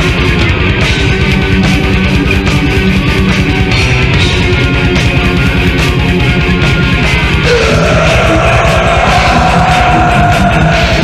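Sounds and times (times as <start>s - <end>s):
loud metal music: 0.0s - 11.0s.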